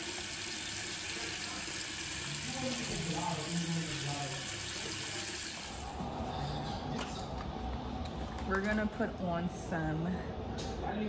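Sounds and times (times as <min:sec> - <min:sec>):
sink tap running: 0:00.0 - 0:05.9.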